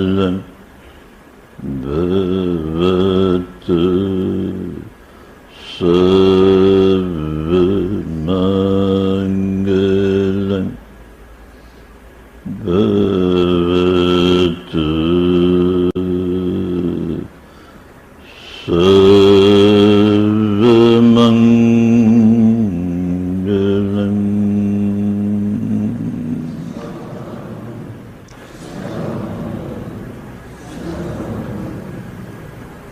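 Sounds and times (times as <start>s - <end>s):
deep male voice chanting: 0.0s - 0.6s, 1.6s - 4.9s, 5.5s - 10.8s, 12.4s - 17.4s, 18.2s - 32.4s.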